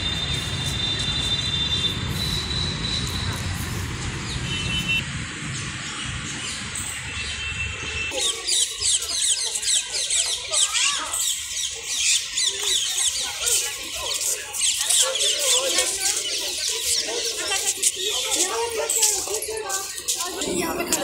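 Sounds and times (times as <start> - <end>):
many birds chirping and squawking: 0.1 - 21.0.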